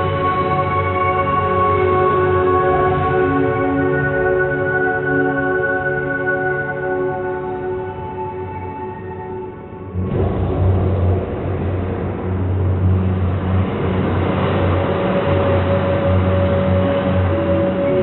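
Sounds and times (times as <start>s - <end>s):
low droning hum: 9.4s - 18.0s
film soundtrack rushing rumble: 9.9s - 18.0s.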